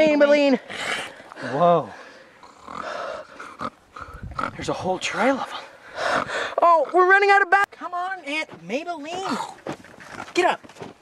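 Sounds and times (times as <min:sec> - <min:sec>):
breathy dog-like growl: 0:02.4 - 0:04.8, 0:05.5 - 0:06.6.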